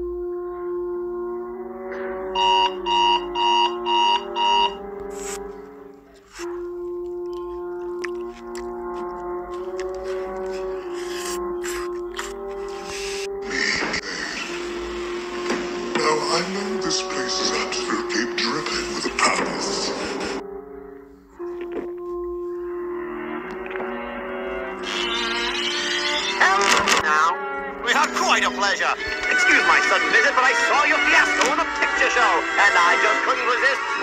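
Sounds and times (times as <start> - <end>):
slow music of held notes: 0.0 - 34.0
electronic timer beeping: 2.4 - 4.8.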